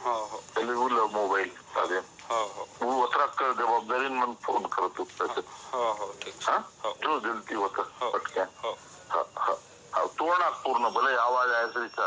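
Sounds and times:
man talking on telephone: 0.0 - 12.0.

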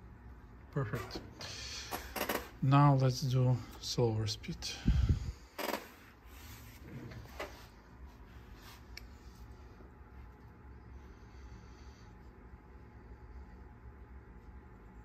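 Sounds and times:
low steady hum: 0.0 - 15.0
faint rubbing handling noise: 5.6 - 10.8.

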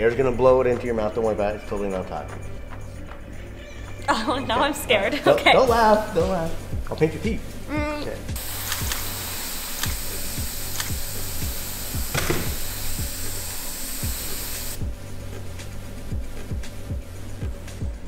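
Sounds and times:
background music with steady beat: 0.0 - 18.0
airbrush hissing: 8.4 - 14.8.

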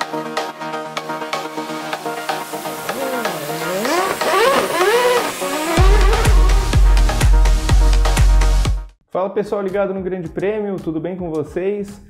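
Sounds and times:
electronic music: 1.6 - 8.8
racing car engine revving: 2.9 - 7.2.

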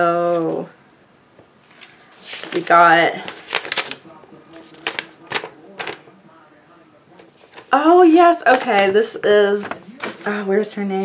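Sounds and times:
paper rustling: 1.6 - 6.2, 7.2 - 10.6.

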